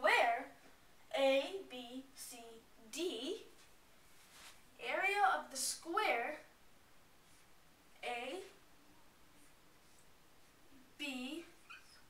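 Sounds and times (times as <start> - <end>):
marker squeaking on whiteboard: 11.6 - 12.0.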